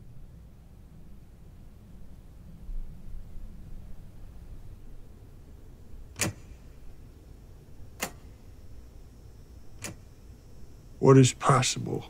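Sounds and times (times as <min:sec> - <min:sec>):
low steady hum: 0:00.0 - 0:12.0
sharp clicks: 0:06.1 - 0:06.7, 0:07.9 - 0:08.4, 0:09.8 - 0:10.2.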